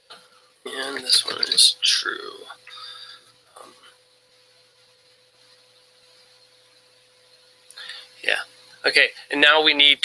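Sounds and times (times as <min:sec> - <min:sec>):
thin electrical hum: 0:00.0 - 0:10.0
man saying um: 0:00.7 - 0:02.6.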